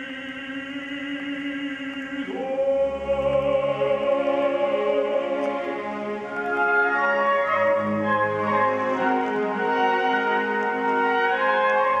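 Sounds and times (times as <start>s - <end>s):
baritone singing opera: 0.0s - 6.6s
symphony orchestra: 0.0s - 12.0s.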